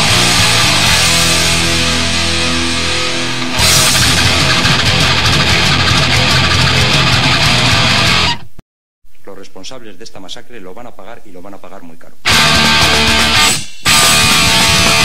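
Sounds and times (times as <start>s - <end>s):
heavy metal punk band: 0.0s - 8.5s, 12.3s - 15.0s
distorted electric guitar chords: 0.0s - 8.6s, 12.2s - 15.0s.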